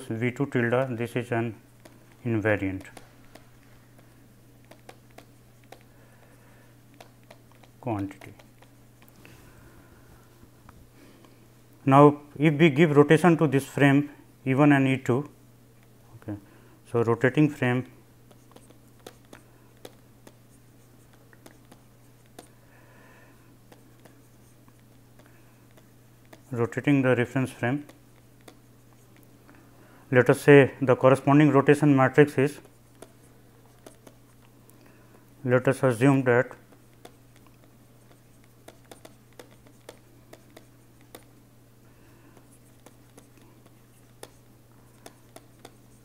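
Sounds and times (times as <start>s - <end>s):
steady low hum: 0.0s - 46.0s
pen tapping: 1.8s - 5.9s, 6.9s - 9.1s, 18.3s - 20.4s, 32.9s - 34.2s, 36.7s - 41.3s, 42.3s - 46.0s
pen scratching on paper: 38.0s - 41.3s, 42.5s - 46.0s.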